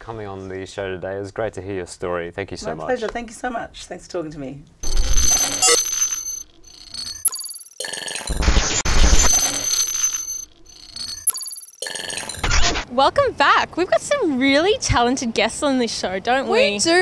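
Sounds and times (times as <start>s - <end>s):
high ringing electronic tones: 4.8s - 12.8s
glitchy digital noise bursts: 4.8s - 12.9s.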